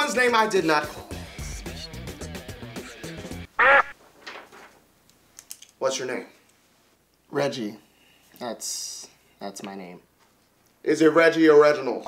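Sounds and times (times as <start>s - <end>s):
quack-like honk with echo: 3.6s - 3.9s.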